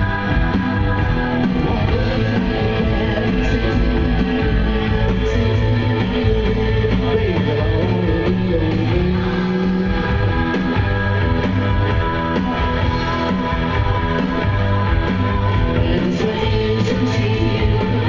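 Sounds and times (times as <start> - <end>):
loud rock music with electric guitar: 0.0 - 18.0.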